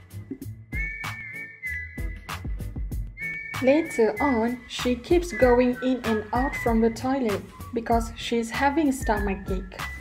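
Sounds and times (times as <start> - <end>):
drum beat and bass: 0.0 - 1.2, 2.0 - 3.8
whistled melody: 0.2 - 7.9, 8.9 - 10.0.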